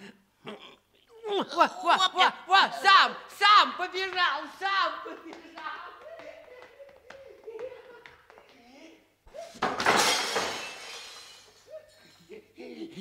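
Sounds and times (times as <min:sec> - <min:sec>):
people laughing: 0:04.7 - 0:09.6, 0:11.6 - 0:13.0
loud crash: 0:09.6 - 0:11.6.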